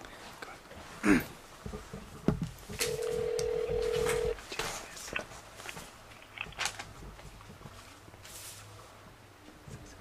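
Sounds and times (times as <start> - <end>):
telephone ringback tone: 2.8 - 4.4.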